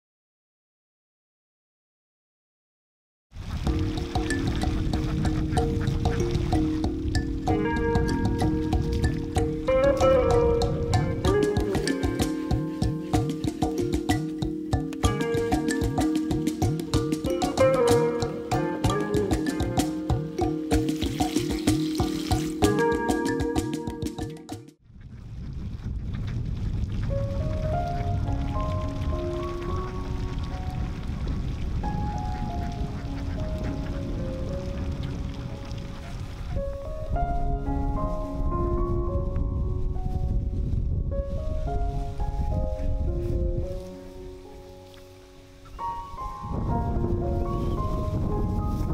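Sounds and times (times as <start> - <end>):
background music of held notes: 3.7 - 24.8, 27.2 - 31.2, 31.8 - 48.9
ducks quacking: 4.5 - 6.9, 32.4 - 34.2.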